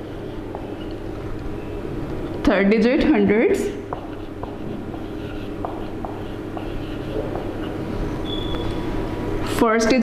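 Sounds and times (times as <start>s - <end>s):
marker scratching on whiteboard: 3.9s - 8.5s
marker squeaks: 4.0s - 8.9s.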